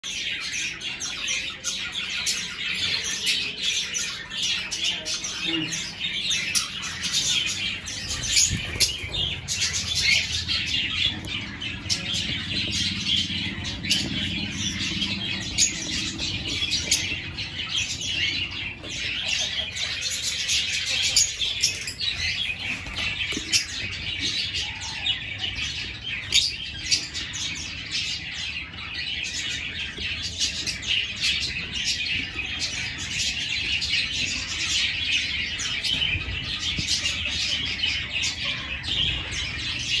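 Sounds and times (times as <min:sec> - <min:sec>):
lovebirds chirping: 0:00.0 - 0:40.0.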